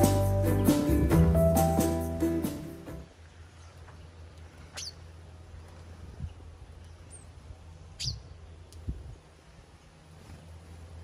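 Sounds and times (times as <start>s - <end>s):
small birds chirping: 3.4s - 10.2s.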